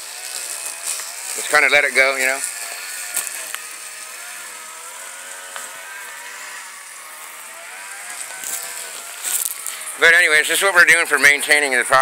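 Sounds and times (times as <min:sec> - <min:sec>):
sprayer hissing: 0:00.0 - 0:12.0.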